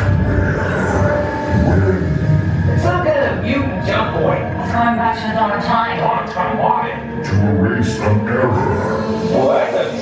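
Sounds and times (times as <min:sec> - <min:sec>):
deep rumble over speakers: 0:00.0 - 0:06.0.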